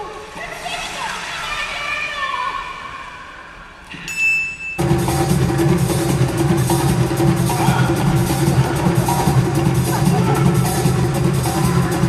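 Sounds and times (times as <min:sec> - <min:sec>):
circus band with drums: 0:04.8 - 0:12.0.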